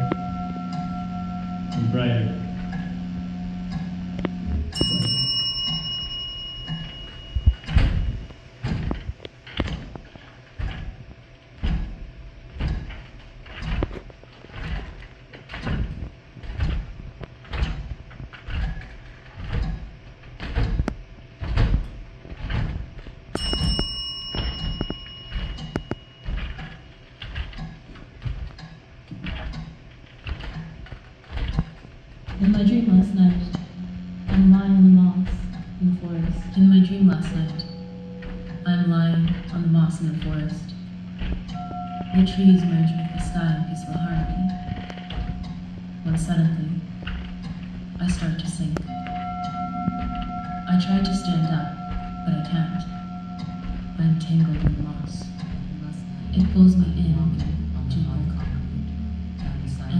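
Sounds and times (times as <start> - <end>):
low steady drone: 0.0 - 59.9
small bell-like chime: 4.5 - 8.2, 23.3 - 26.8, 48.3 - 57.0.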